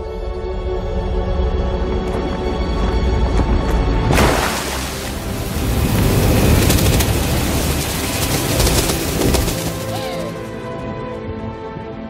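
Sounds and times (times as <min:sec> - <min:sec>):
rushing roar with crackle: 0:01.4 - 0:10.6.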